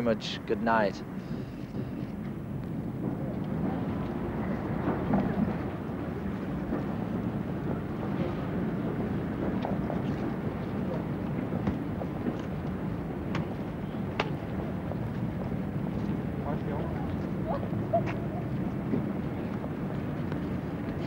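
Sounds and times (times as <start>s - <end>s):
low traffic rumble: 0.0s - 21.0s
street hubbub: 0.0s - 21.0s.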